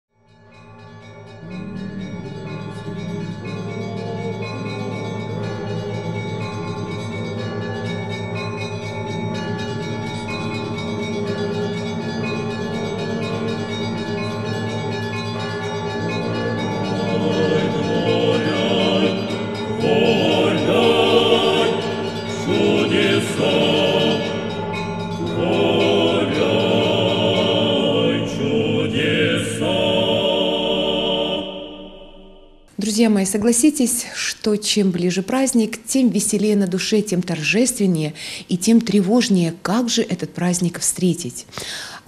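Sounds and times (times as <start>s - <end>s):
bell-like tones: 0.1s - 33.5s
choral singing: 1.4s - 8.1s, 10.8s - 32.7s.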